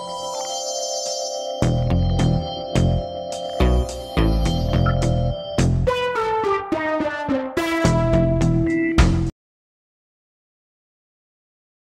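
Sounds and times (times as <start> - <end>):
descending keyboard notes: 0.0 - 9.1.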